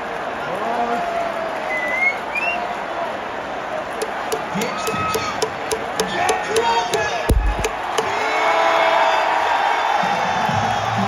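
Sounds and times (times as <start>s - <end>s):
stadium crowd cheering: 0.0s - 11.0s
rhythmic clapping: 4.0s - 8.2s
dull thump: 4.3s - 8.1s.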